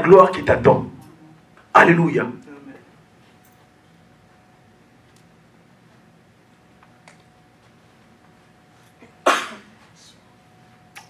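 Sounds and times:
person sneezing: 9.0s - 9.8s.

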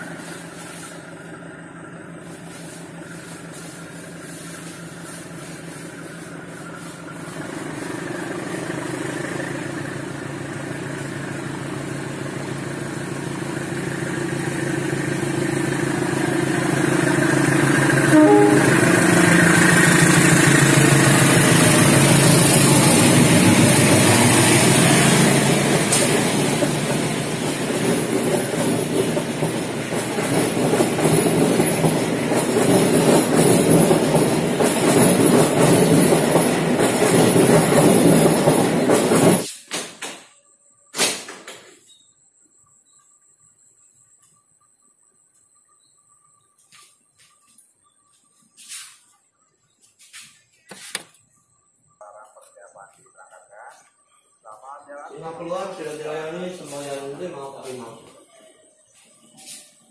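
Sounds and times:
diesel locomotive engine passing: 0.0s - 39.6s, 51.5s - 59.9s
train wheels clacking on rails: 16.7s - 39.6s.

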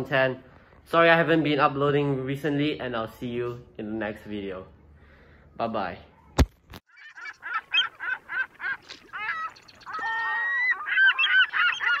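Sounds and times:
honking bird calls: 6.9s - 12.0s.

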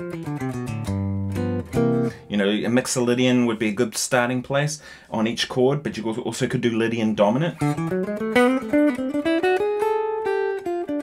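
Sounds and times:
clean electric guitar jazz line: 0.0s - 3.2s, 7.4s - 11.0s.

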